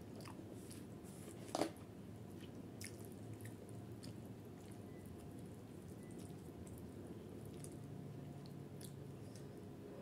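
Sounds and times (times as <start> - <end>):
steady low hum: 0.0 - 10.0
wet eating sounds: 2.3 - 9.6.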